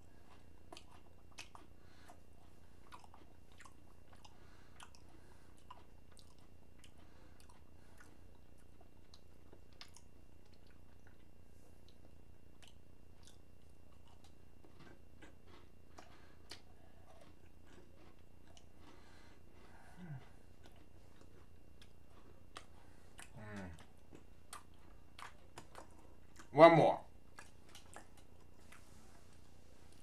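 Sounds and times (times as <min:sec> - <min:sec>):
person chewing cookies: 0:00.0 - 0:30.0.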